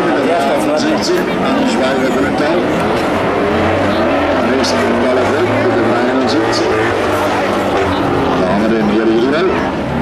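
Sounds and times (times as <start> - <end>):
race car engines revving: 0.0 - 10.0.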